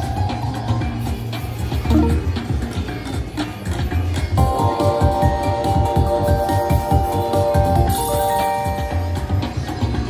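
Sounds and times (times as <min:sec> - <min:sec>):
slot machine music with pulsing beat: 0:00.0 - 0:02.8, 0:04.3 - 0:09.8.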